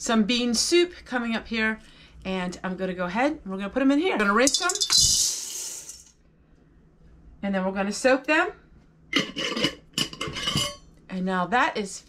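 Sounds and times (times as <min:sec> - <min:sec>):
beans rattling into metal colander: 0:04.4 - 0:06.1.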